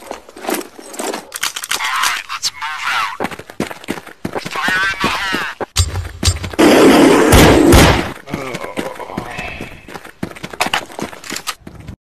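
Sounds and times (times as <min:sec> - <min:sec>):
person speaking: 0:01.7 - 0:03.3, 0:04.4 - 0:05.7, 0:08.2 - 0:09.9.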